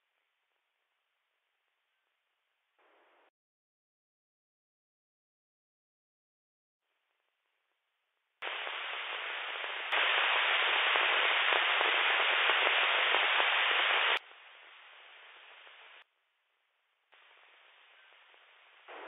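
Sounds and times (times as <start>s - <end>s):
radio static hiss: 2.8s - 3.3s, 8.4s - 16.0s, 17.1s - 19.0s.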